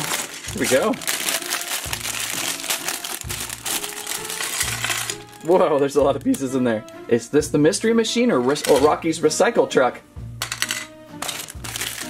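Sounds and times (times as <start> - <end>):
plastic bag crinkling: 0.0 - 5.9, 11.2 - 12.0.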